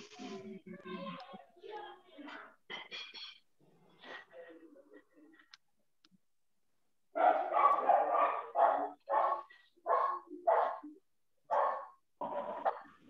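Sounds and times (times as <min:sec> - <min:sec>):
dog barking: 0:07.2 - 0:12.8.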